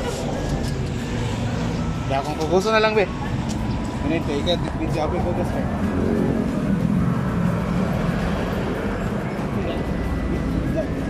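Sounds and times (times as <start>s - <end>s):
motor vehicle engine rumble: 0.0s - 11.0s
street traffic: 0.0s - 11.0s.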